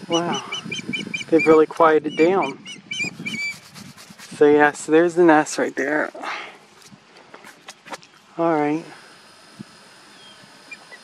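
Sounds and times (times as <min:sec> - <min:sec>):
high bird chirps: 0:00.0 - 0:03.8, 0:10.1 - 0:11.0
open-air background hiss: 0:00.0 - 0:11.0.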